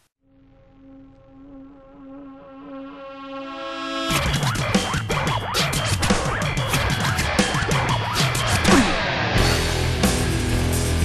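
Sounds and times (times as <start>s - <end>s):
buzzing drone tone: 0.1s - 5.0s.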